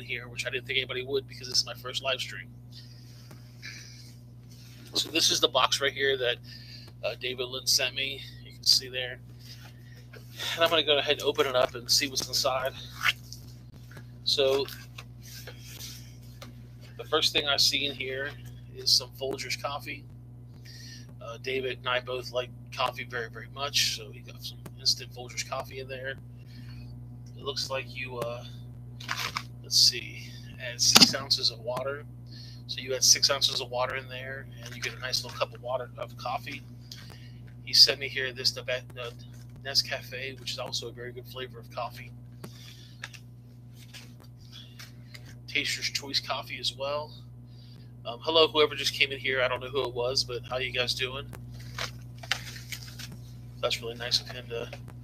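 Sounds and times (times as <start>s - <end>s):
steady electrical hum: 0.0s - 55.0s.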